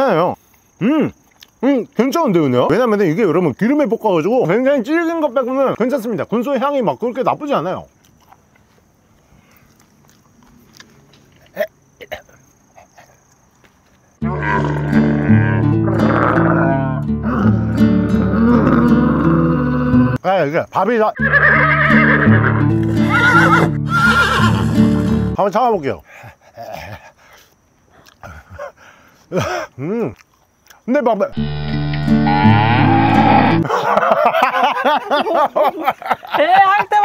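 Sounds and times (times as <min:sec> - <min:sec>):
person chewing food: 0:09.6 - 0:11.5
gagging throat sound: 0:14.2 - 0:20.2
dog sound effect: 0:31.4 - 0:33.7.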